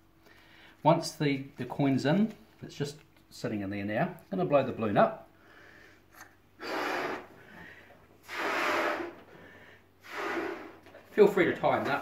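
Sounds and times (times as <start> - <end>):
quiet breath: 0.2 - 0.8, 5.3 - 10.8
person blowing up balloon: 6.1 - 7.4, 8.2 - 9.4, 10.0 - 11.0.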